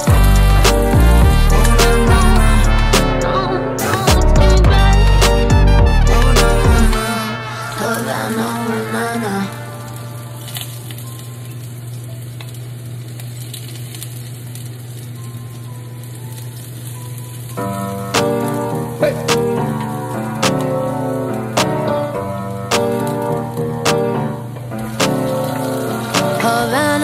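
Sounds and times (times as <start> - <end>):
hip-hop music: 0.0 - 10.4, 17.8 - 27.0
garlic sizzling in hot oil: 9.5 - 20.1, 24.8 - 27.0.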